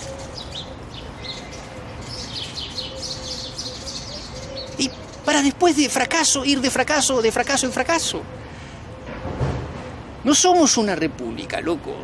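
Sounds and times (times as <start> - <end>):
small birds chirping: 0.0 - 9.2.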